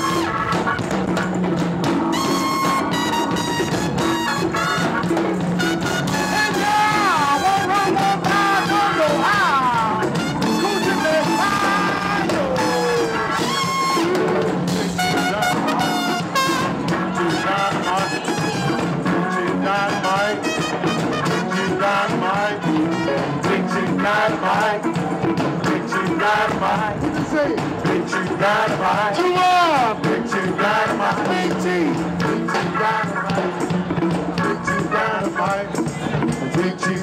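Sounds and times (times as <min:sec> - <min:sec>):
live band with horns and drums: 0:00.0 - 0:37.0.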